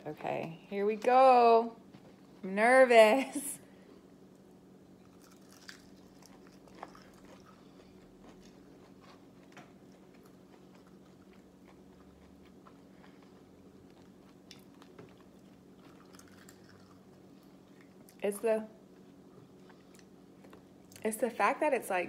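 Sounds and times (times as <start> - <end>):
low room hum: 0.0 - 22.0
faint chewing: 4.4 - 18.2, 18.9 - 21.1
mouth clicks and crunches: 5.1 - 18.2.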